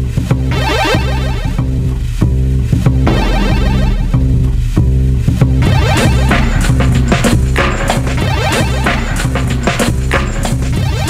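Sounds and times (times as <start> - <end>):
low bass line: 0.0 - 11.0
punchy drum hits: 1.9 - 10.8
short falling pitched sounds: 3.0 - 4.8.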